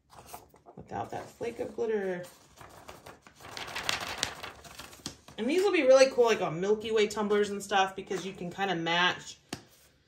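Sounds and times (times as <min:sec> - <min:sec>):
paper rustling and crinkling: 0:00.0 - 0:05.7.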